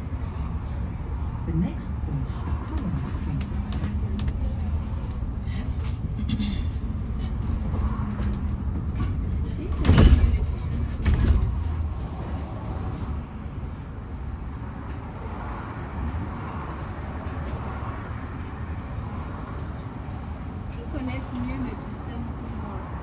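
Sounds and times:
bus road rumble: 0:00.0 - 0:23.0.

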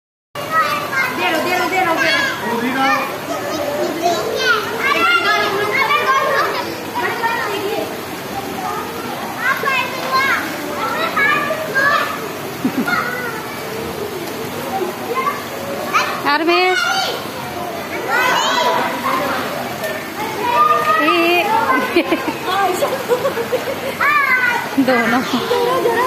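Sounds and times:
children shouting in a pool: 0:00.4 - 0:26.0.

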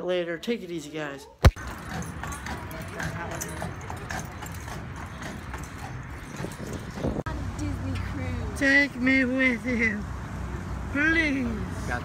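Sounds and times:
hooves clip-clopping on pavement: 0:01.5 - 0:08.5.

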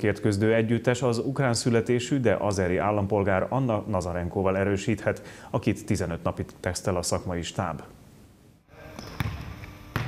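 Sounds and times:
volleyball thuds: 0:09.0 - 0:10.0.

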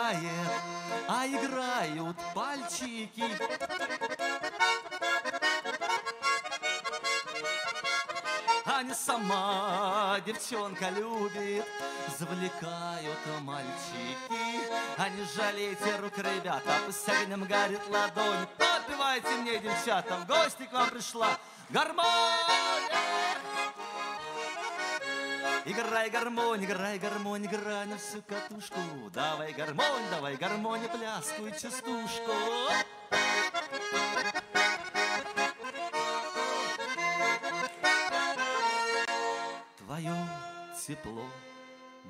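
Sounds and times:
button accordion melody: 0:00.0 - 0:42.0
folk singing: 0:08.7 - 0:33.7.

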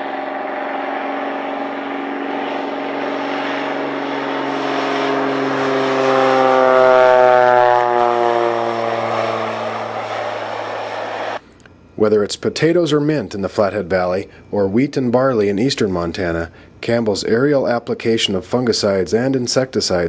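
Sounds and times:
propeller airplane passing: 0:00.0 - 0:11.4.

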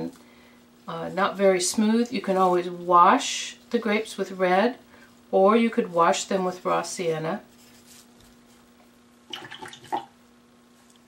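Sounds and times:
low electrical hum: 0:00.0 - 0:11.0
paintbrush rinsed in water: 0:09.3 - 0:10.1.

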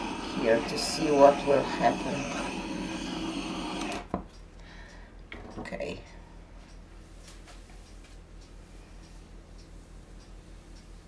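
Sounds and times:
torch flame hissing: 0:00.0 - 0:04.1.

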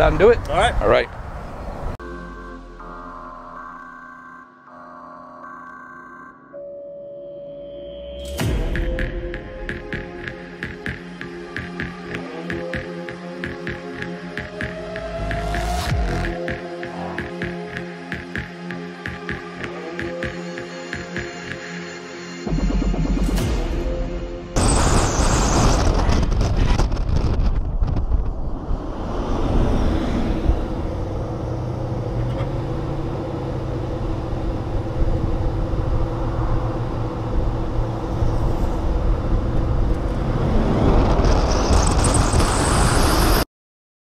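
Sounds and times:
road noise: 0:00.0 - 0:02.9, 0:08.6 - 0:22.4, 0:26.4 - 0:43.4
heavy wind buffeting: 0:26.0 - 0:41.5.

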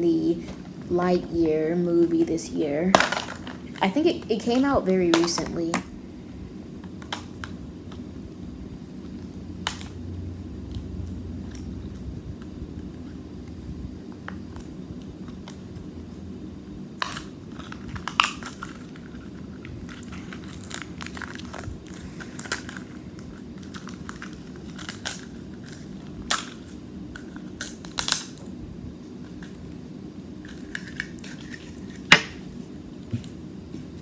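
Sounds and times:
steady low hum: 0:00.0 - 0:34.0
plastic packaging clicks and crinkles: 0:17.0 - 0:28.5, 0:30.4 - 0:32.3.

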